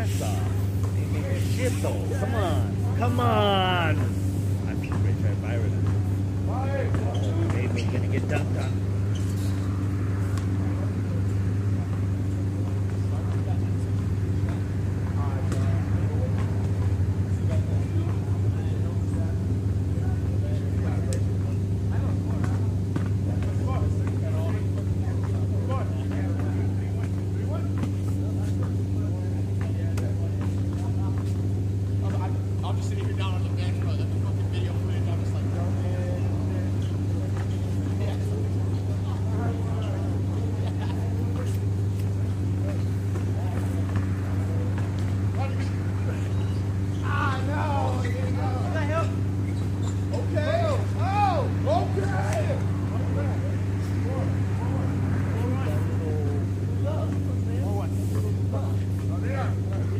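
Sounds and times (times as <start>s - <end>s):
distant voices: 0.0s - 59.9s
steady low hum: 0.0s - 59.9s
basketballs bouncing on court: 42.3s - 47.0s.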